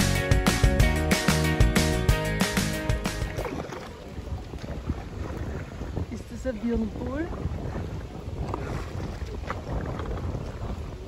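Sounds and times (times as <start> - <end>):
paddle splashes and drips: 2.6 - 11.0
wind rumble on microphone: 3.3 - 11.0.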